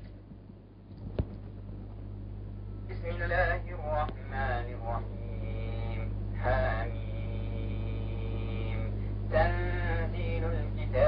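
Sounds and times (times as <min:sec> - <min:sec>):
electrical hum: 0:00.0 - 0:11.0
man chanting: 0:02.9 - 0:11.0.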